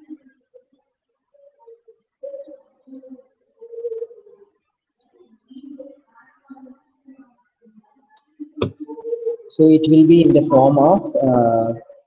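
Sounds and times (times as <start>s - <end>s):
pigeon cooing: 0.0s - 7.8s, 8.4s - 12.0s.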